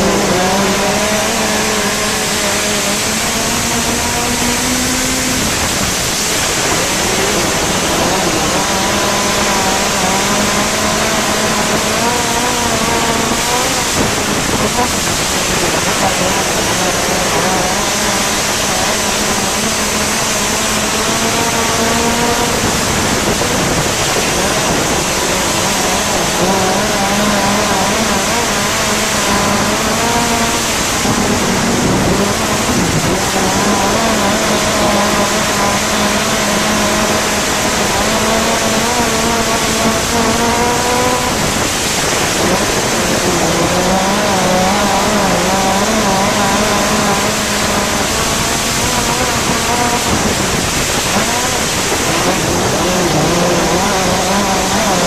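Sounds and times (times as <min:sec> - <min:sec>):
racing engine at speed: 0:00.0 - 0:55.0
wind rush on microphone: 0:00.0 - 0:55.0.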